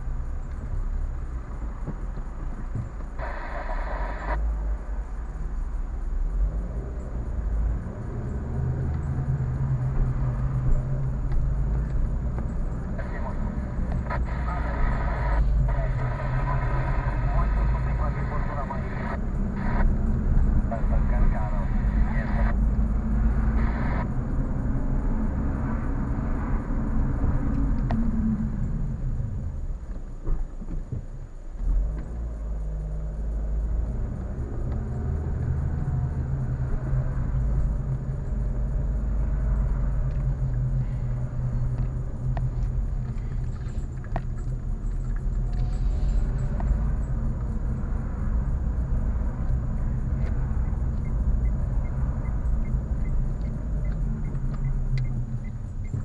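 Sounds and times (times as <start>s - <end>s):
car engine: 0.0s - 56.0s
road noise inside car: 0.0s - 56.0s.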